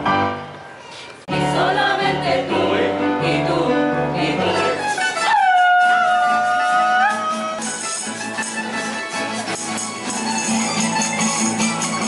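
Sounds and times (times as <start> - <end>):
mixed choir holding a chord: 1.3 - 5.2.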